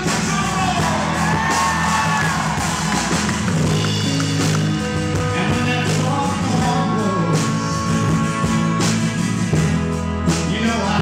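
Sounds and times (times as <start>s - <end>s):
acoustic guitar: 0.0s - 11.0s
drum kit: 0.0s - 11.0s.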